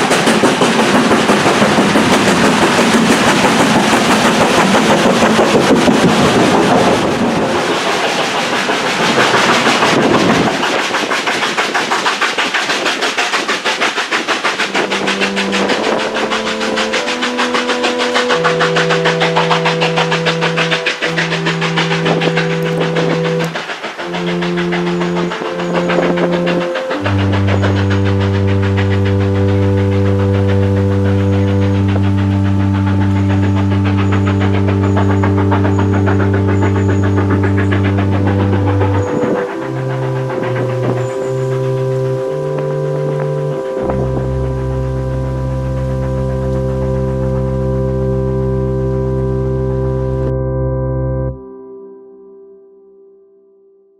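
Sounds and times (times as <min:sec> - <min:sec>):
steam train running past: 0:00.0 - 0:50.3
slow organ-like music chords: 0:14.6 - 0:53.9.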